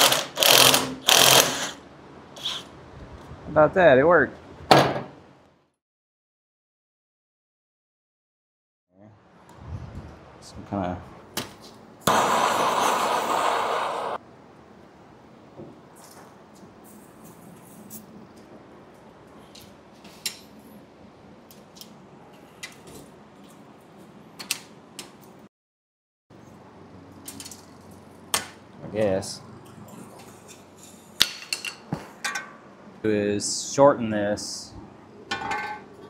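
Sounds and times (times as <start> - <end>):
loud hiss: 12.0 - 14.2.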